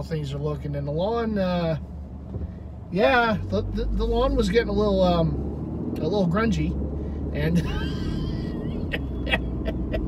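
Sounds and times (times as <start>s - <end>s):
road and engine rumble in car: 0.0s - 10.0s.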